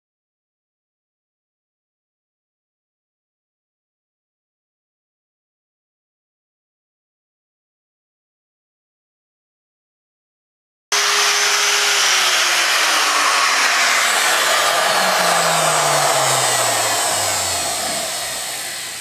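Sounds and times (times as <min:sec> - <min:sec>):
electric router whining: 0:10.9 - 0:19.0.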